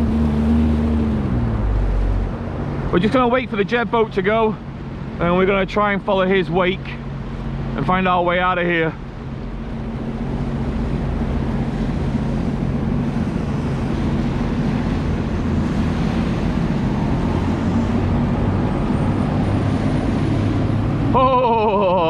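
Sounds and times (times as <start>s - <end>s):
watercraft engine running: 0.0s - 18.8s.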